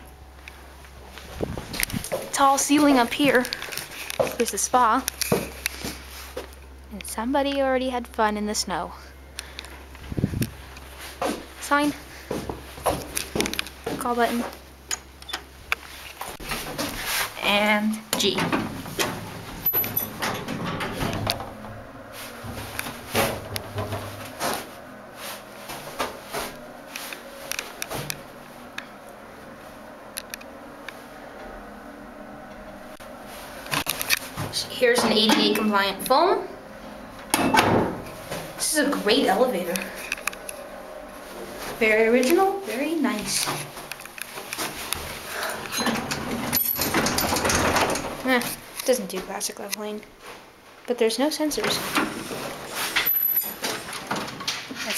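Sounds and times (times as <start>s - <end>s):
elevator low hum: 0.0s - 49.2s
clicks and knocks: 43.4s - 48.6s.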